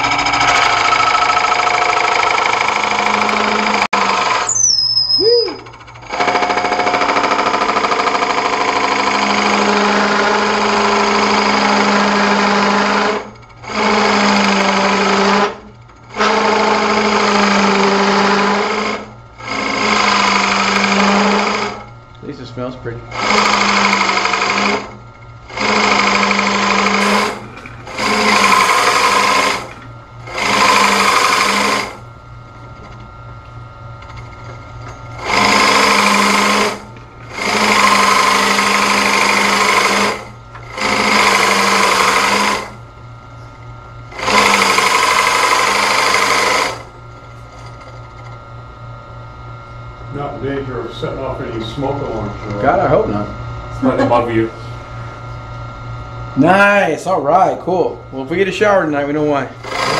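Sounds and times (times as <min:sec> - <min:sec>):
lathe motor hum: 0:00.0 - 0:04.5, 0:05.6 - 0:59.9
drill bit cutting into wood: 0:00.0 - 0:15.6, 0:16.2 - 0:21.9, 0:23.2 - 0:32.0, 0:35.2 - 0:42.8, 0:44.1 - 0:46.9, 0:59.6 - 0:59.9
brief falling squeal: 0:04.4 - 0:05.7.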